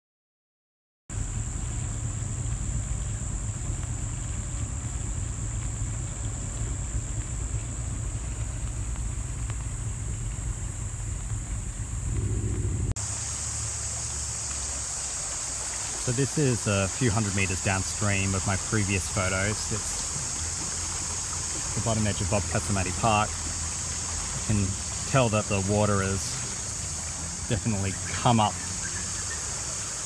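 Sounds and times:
wind rumble on microphone: 0:01.2 - 0:13.0
floodwater rushing: 0:01.2 - 0:30.0.

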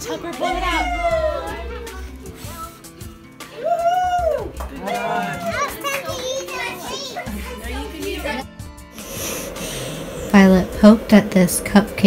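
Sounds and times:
children talking and exclaiming: 0:00.0 - 0:08.6
music: 0:00.0 - 0:12.0.

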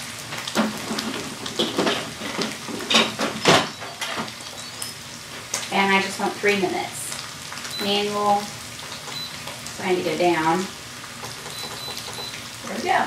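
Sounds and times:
fat sizzling in a skillet: 0:00.0 - 0:13.0.

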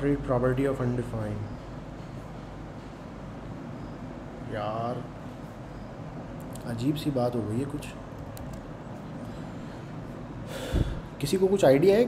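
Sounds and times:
man exhaling through nose: 0:10.5 - 0:11.2.

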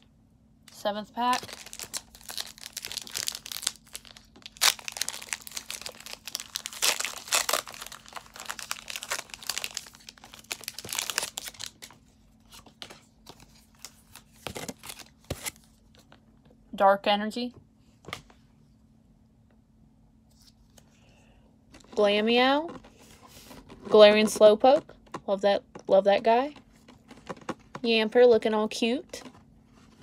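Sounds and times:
foil wrapper crinkling and tearing: 0:01.2 - 0:12.0, 0:13.6 - 0:15.6.

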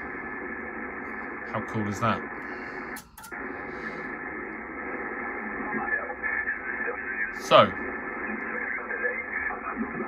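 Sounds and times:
garbled radio voices: 0:00.0 - 0:10.0
radio hiss: 0:00.0 - 0:10.0
radio clicks: 0:02.8 - 0:07.0.

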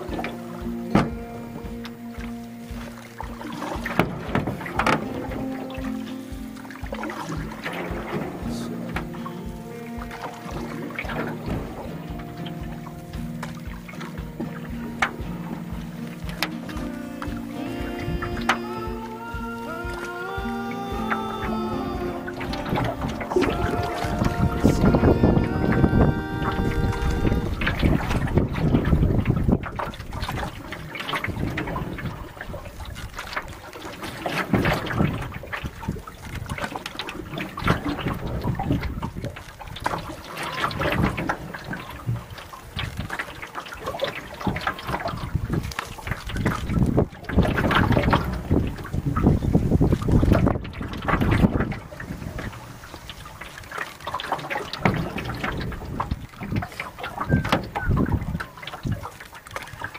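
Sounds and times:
music with held notes: 0:00.0 - 0:28.3
canoe paddle strokes in water: 0:00.0 - 0:59.9
wind on microphone: 0:00.0 - 0:59.9.

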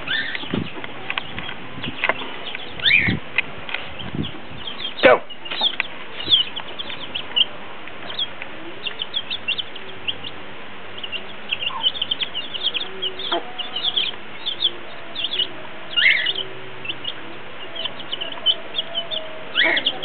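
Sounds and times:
hen clucking: 0:00.0 - 0:10.4, 0:11.0 - 0:20.0
chicks peeping: 0:00.0 - 0:20.0.

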